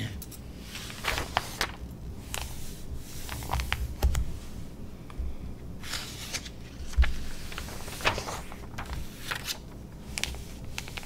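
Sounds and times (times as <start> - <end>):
magazine pages tapping and swishing: 0.7 - 2.6, 5.9 - 11.0.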